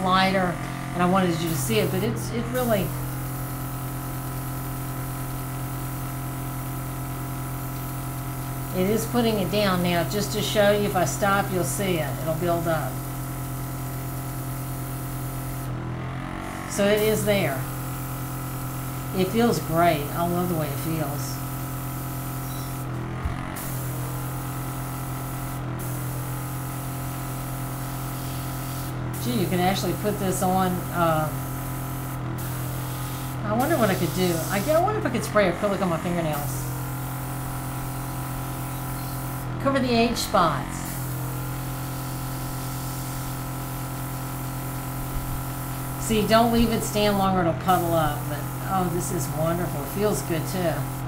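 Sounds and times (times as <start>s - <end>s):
compressor humming: 0.0s - 51.0s
air hissing from airbrush: 1.3s - 6.0s, 10.4s - 15.7s, 17.0s - 34.9s, 37.2s - 39.6s, 40.8s - 51.0s.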